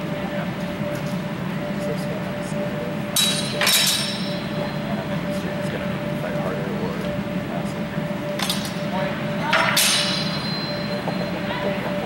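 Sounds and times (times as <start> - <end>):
high metallic ring: 3.1 - 4.9, 8.4 - 11.8.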